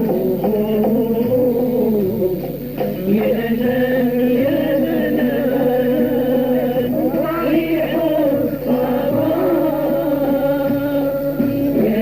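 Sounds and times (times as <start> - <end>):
men singing together: 0.0 - 12.0
sustained low tones: 1.7 - 12.0.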